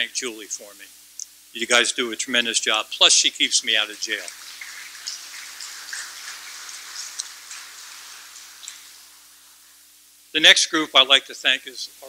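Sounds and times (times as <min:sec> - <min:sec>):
faint steady hum: 0:00.0 - 0:12.0
audience applauding: 0:03.5 - 0:09.4.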